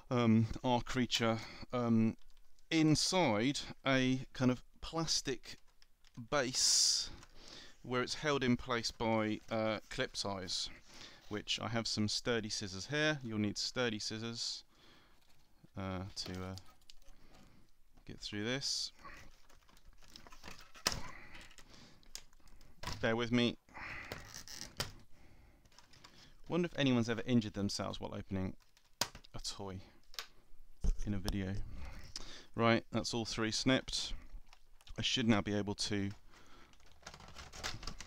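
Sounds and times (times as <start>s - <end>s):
plastic packaging clicking and rustling: 15.1s - 17.6s, 19.1s - 23.2s, 24.0s - 26.7s, 28.4s - 29.4s, 30.0s - 31.4s, 36.0s - 38.0s.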